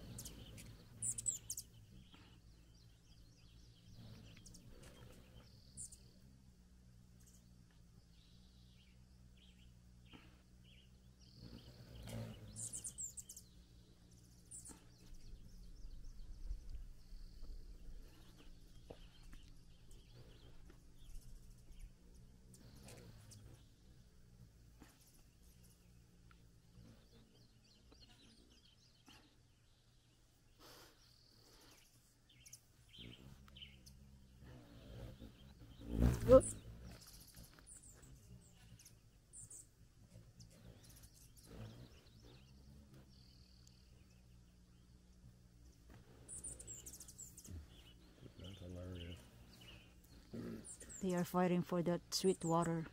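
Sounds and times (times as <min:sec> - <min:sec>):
hummingbirds chipping: 0:00.0 - 0:52.9.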